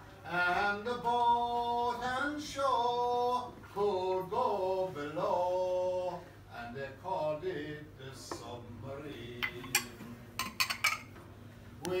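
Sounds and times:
glasses clinking: 9.4 - 11.1.

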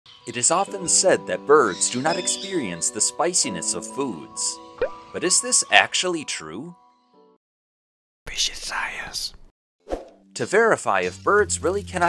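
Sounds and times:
breathy whisper: 8.3 - 9.3.

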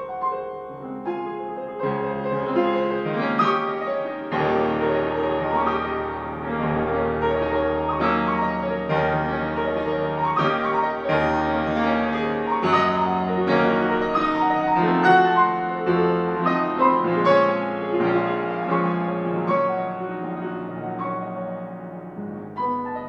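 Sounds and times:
grand piano chords: 0.0 - 23.0.

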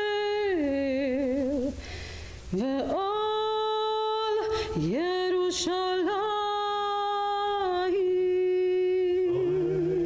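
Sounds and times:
man singing a low held note: 9.2 - 10.0.

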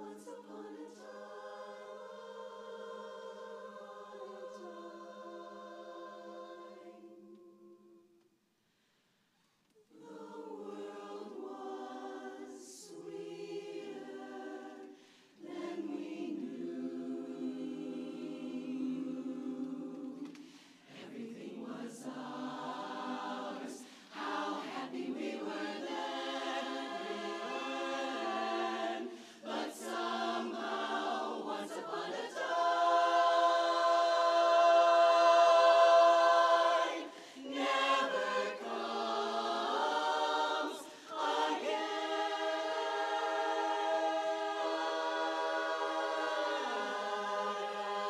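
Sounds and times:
women's chorus singing a cappella: 0.0 - 8.2, 9.8 - 48.0.

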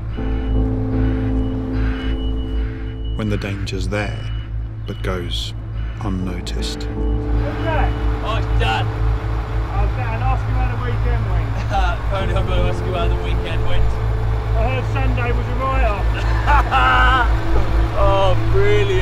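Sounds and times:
diesel lorry engine idling: 0.0 - 19.0
men talking: 3.2 - 19.0.

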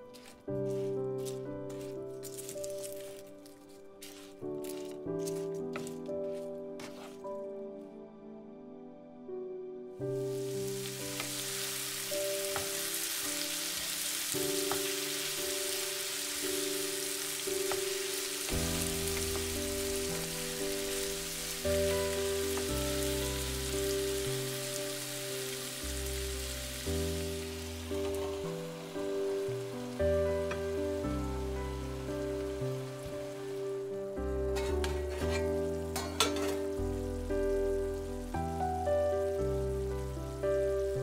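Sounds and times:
pan sizzling in oil: 0.0 - 7.2, 10.1 - 41.0
wooden spatula stirring: 0.0 - 7.3
background music with slow bass: 0.0 - 41.0.

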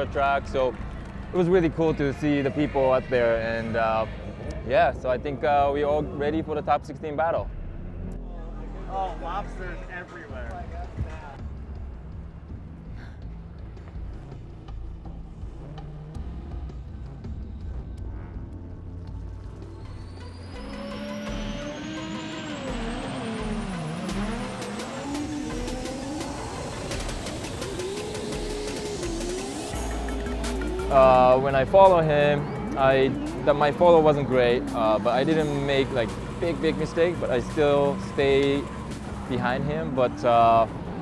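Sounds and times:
car engines revving: 0.0 - 41.0
music with steady low beat: 7.5 - 41.0
rising sweep: 18.1 - 41.0.

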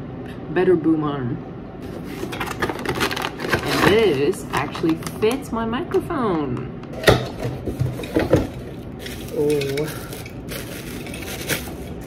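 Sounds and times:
hands rummaging in cardboard box: 1.8 - 5.1, 7.6 - 12.0
plastic bag rustling: 1.8 - 5.2, 7.6 - 12.0.

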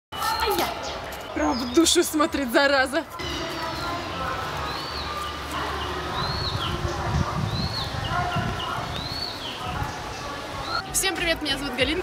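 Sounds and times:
faint distant voices: 0.2 - 12.0.

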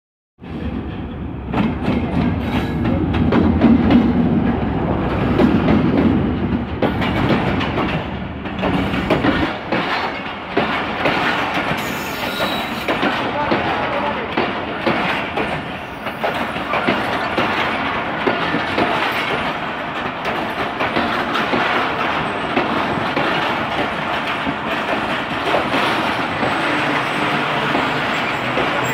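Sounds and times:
diesel locomotive engine rumble: 0.4 - 28.9
train wheels rushing on rails: 0.4 - 28.9
clicks over rail joints: 5.4 - 28.9.

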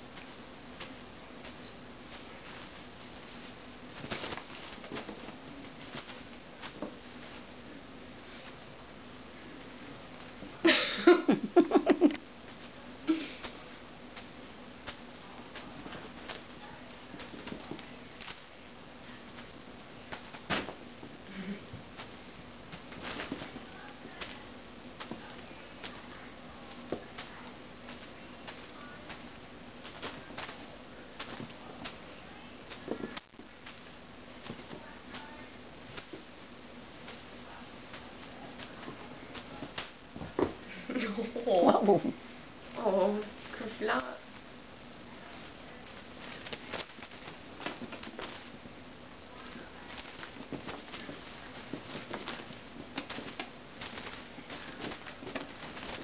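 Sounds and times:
kittens tapping and rustling: 0.0 - 10.6, 11.6 - 56.0
faint steady hum: 0.0 - 56.0
steady background hiss: 0.0 - 56.0
kitten thumping and rustling on carpet: 20.1 - 36.3, 45.2 - 56.0.

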